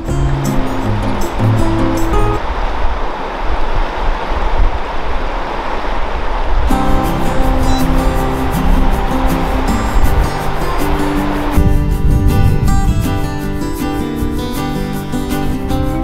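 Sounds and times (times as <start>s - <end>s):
fast-flowing river rushing: 0.0s - 16.0s
background music: 6.7s - 16.0s.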